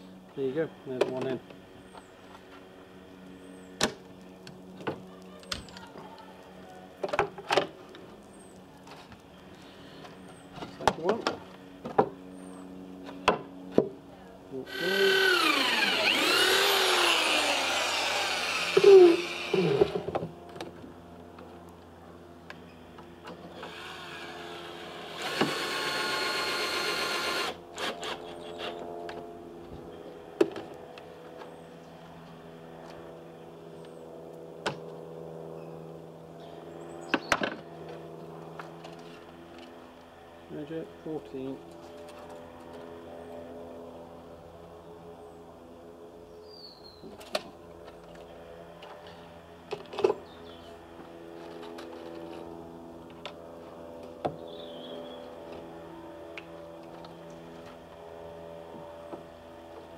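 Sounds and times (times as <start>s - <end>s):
cordless drill driving screws: 14.7s - 20.0s, 23.6s - 28.8s.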